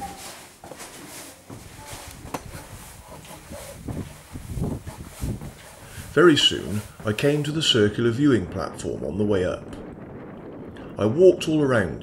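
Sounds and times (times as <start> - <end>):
footsteps on stone stairs: 0.0 - 7.5
low irregular thumps: 1.4 - 7.8.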